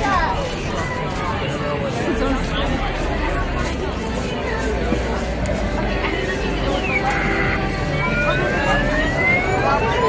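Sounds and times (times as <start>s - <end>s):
dense noisy background: 0.0s - 10.0s
rising siren-like whistling tones: 6.3s - 10.0s.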